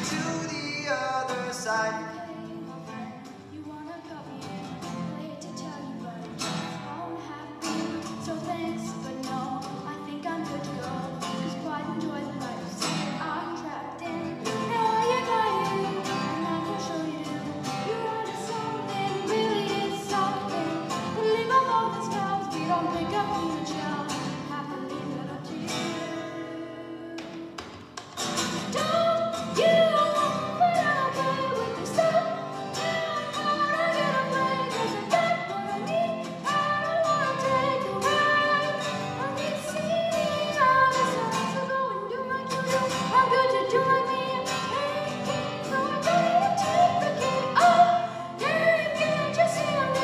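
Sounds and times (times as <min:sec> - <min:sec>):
person singing: 0:00.0 - 0:27.6, 0:28.7 - 0:50.0
acoustic guitars strumming: 0:00.0 - 0:50.0.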